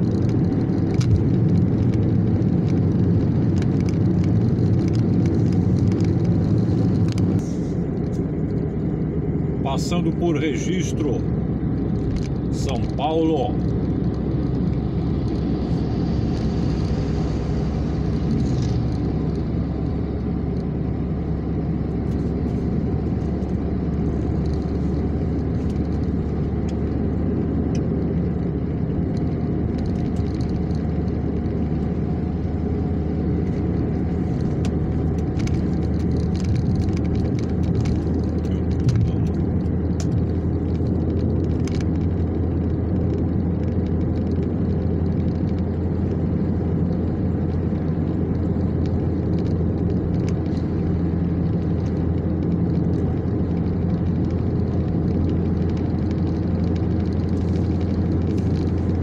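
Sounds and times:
car road and engine noise: 0.0s - 59.0s.

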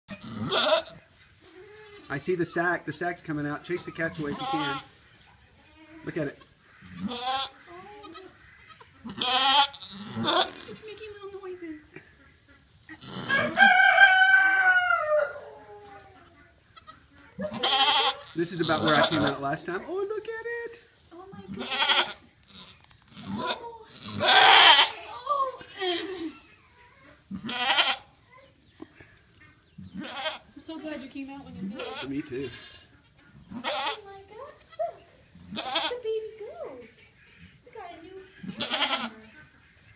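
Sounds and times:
goat bleating: 0.1s - 2.2s, 3.7s - 4.9s, 5.6s - 10.8s, 16.2s - 19.6s, 21.4s - 26.4s, 27.1s - 28.2s, 29.8s - 30.5s, 31.6s - 36.2s, 37.3s - 39.6s.

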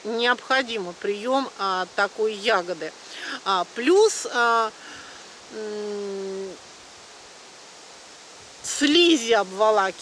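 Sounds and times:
woman speaking: 0.0s - 4.9s, 5.5s - 6.6s, 8.7s - 10.0s
steady outdoor hiss: 0.0s - 10.0s.

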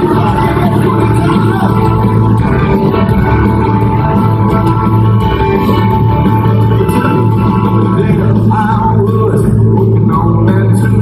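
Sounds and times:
heavy bass line: 0.0s - 11.0s
live country band playing: 0.0s - 11.0s.

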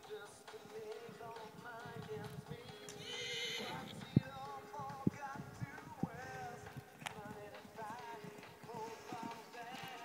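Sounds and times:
background music: 0.0s - 10.0s
horse whinnying: 2.9s - 4.1s.

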